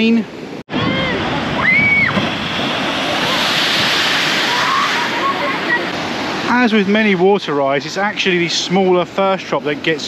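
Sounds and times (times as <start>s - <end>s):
water rushing and splashing: 0.0s - 10.0s.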